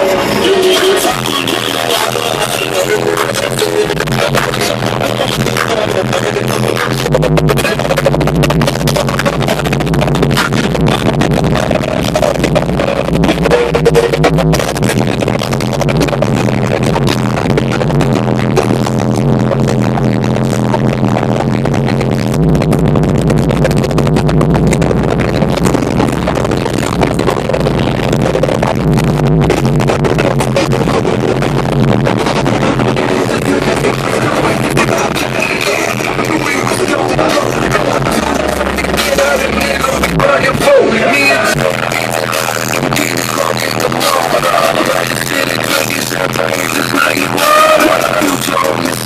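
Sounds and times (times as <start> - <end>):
loud music with heavy bass: 0.0 - 49.0.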